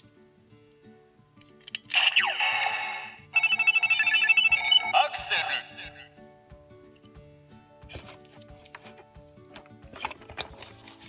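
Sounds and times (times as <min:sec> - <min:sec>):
quiet background music: 0:00.0 - 0:11.0
fast high beeps: 0:02.1 - 0:05.2.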